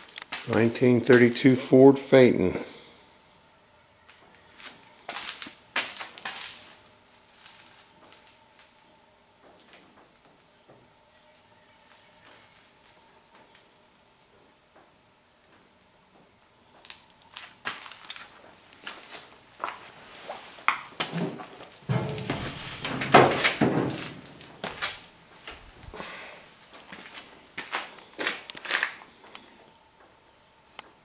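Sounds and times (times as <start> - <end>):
footsteps crunching on gritty floor: 0.0 - 1.3, 4.3 - 10.4, 16.8 - 29.3.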